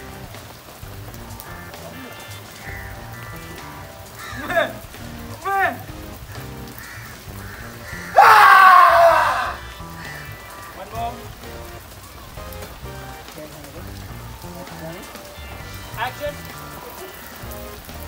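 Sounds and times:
background music: 0:00.0 - 0:18.0
loud drawn-out cry: 0:08.0 - 0:09.7.

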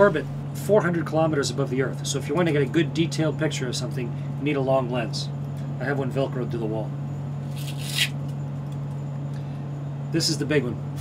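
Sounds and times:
cabin fans humming: 0:00.0 - 0:11.0
velcro tearing open: 0:07.5 - 0:08.3.

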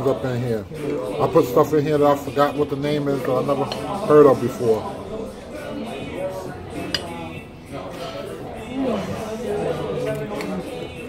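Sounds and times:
background music: 0:00.0 - 0:11.0
faint background voices: 0:00.0 - 0:11.0.

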